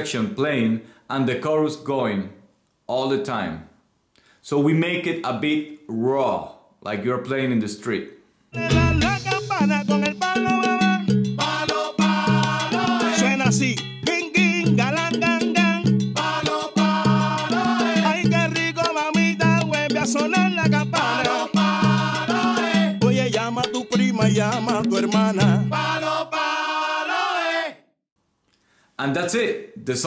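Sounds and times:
lead singer improvising: 8.6s - 11.1s
chorus singing refrain: 8.6s - 14.2s, 16.2s - 27.8s
percussion rhythm: 8.6s - 26.2s.

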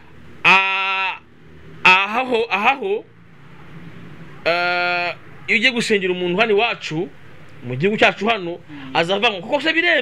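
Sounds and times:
man vocalising aah: 0.4s - 2.6s, 4.4s - 5.2s.

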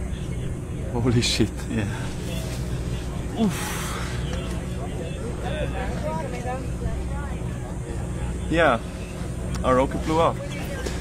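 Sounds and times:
voices talking indistinctly: 0.0s - 11.0s.

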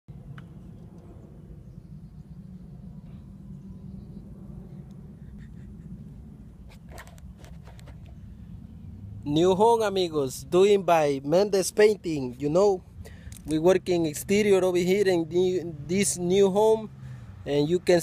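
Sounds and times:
low outdoor background rumble: 0.1s - 18.0s.

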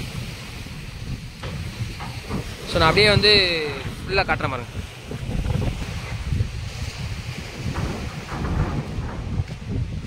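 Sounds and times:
waves washing against steel deck: 0.0s - 10.0s
wind buffeting microphone: 0.0s - 10.0s.

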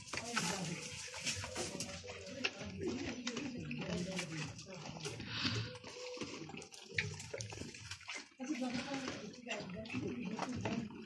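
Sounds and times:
people talking: 0.0s - 6.7s, 8.3s - 11.0s
goat munching wet scraps: 0.0s - 11.0s.

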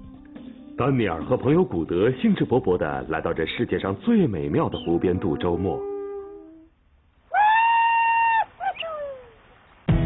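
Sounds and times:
man yodel-like calling: 4.6s - 6.7s, 7.3s - 9.3s.

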